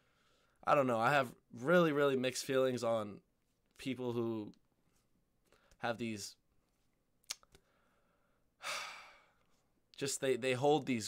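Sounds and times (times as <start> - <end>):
man sighing: 8.6 - 9.4.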